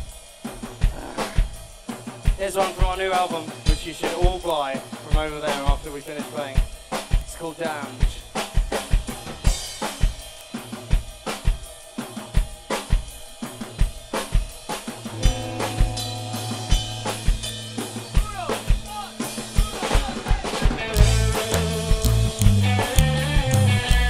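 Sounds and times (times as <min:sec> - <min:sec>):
rock drum beat: 0:00.0 - 0:24.0
held low string notes: 0:20.9 - 0:24.0.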